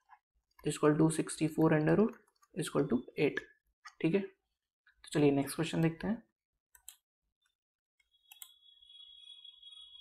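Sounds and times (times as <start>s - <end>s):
steady high-pitched tone: 8.1s - 10.0s.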